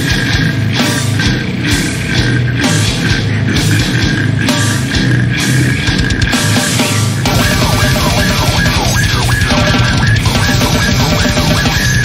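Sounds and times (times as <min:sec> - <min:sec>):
death metal music: 0:00.0 - 0:12.0.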